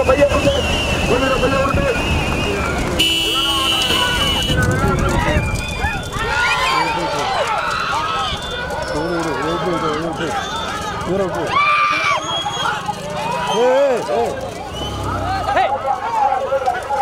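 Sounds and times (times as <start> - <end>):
cart passing by: 0.0 - 17.0
spectators shouting: 0.0 - 17.0.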